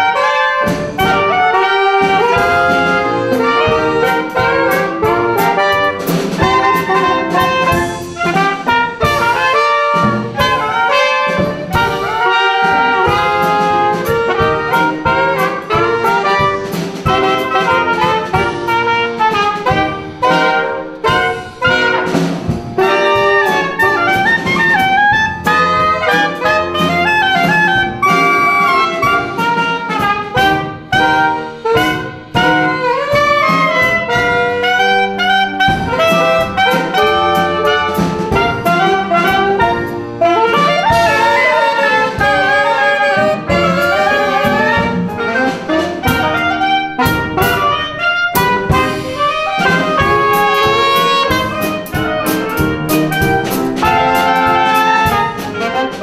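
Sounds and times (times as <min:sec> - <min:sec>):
drum and cymbal strikes: 0:00.0 - 0:56.0
small jazz band playing: 0:00.0 - 0:56.0.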